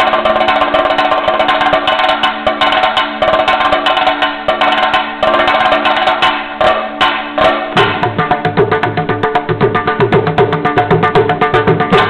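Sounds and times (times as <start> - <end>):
cylindrical drum played with sticks: 0.0 - 12.0.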